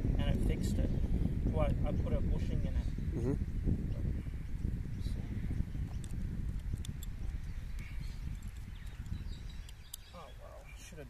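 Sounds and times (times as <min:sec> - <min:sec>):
wind buffeting microphone: 0:00.0 - 0:11.0.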